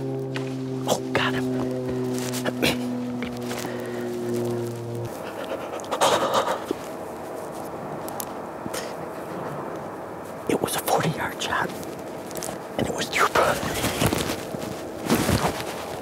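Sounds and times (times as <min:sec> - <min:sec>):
held music chord: 0:00.0 - 0:05.2
man whispering: 0:00.8 - 0:01.7, 0:05.1 - 0:06.8, 0:10.4 - 0:11.8, 0:12.4 - 0:14.3
man breathing hard: 0:03.5 - 0:04.4, 0:05.1 - 0:06.9.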